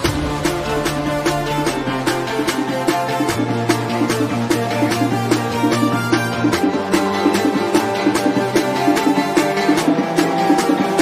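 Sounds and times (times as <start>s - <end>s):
guitar music: 0.0s - 11.0s
music with percussive beat: 0.0s - 11.0s.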